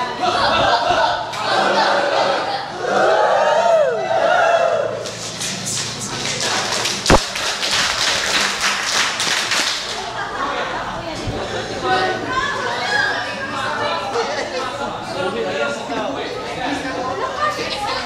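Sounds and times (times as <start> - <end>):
voice whooping: 3.4 - 5.0
people clapping: 5.0 - 10.2.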